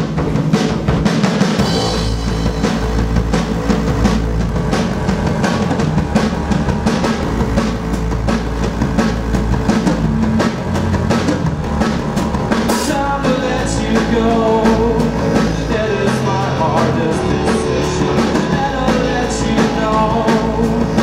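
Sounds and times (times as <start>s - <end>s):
drum kit beat: 0.0s - 21.0s
live rock band: 0.0s - 21.0s
deep sustained bass line: 1.6s - 21.0s.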